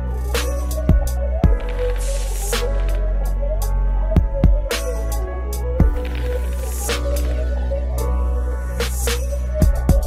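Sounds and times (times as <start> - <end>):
electronic music with deep bass: 0.0 - 10.0.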